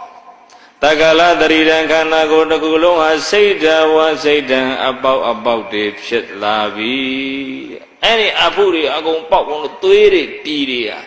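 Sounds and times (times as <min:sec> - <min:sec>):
person chanting into a microphone: 0:00.0 - 0:07.9.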